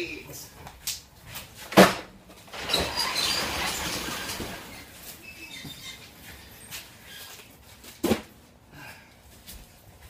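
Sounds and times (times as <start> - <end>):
boxes rattling down ramp: 1.8 - 5.2.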